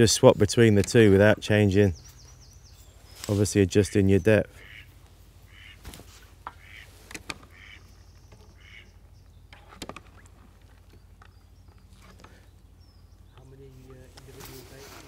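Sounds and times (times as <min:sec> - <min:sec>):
faint ducks quacking: 0:03.5 - 0:09.1.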